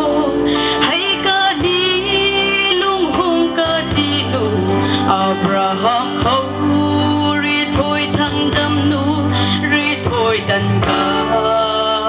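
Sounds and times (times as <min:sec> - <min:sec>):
guitar: 0:00.0 - 0:12.0
steady bass line: 0:00.0 - 0:12.0
woman singing into microphone: 0:00.0 - 0:12.0.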